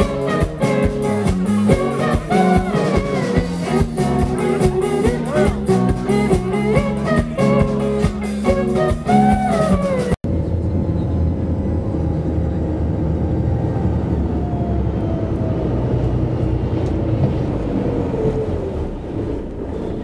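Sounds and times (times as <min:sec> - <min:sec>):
live band music: 0:00.0 - 0:10.2
boat engines droning: 0:10.3 - 0:20.0.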